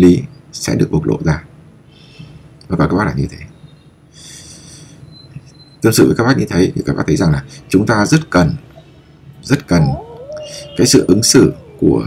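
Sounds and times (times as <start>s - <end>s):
man speaking: 9.5s - 12.0s.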